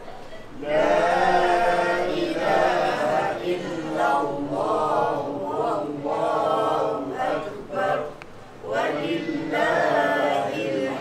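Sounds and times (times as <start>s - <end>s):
voices chanting together: 0.5s - 11.0s.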